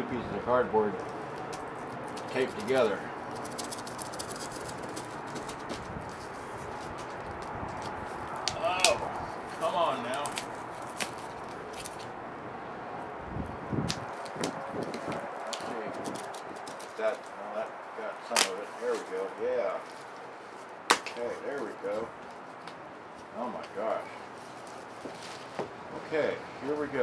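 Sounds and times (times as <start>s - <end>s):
sharp clicks and scrapes: 1.5s - 8.6s.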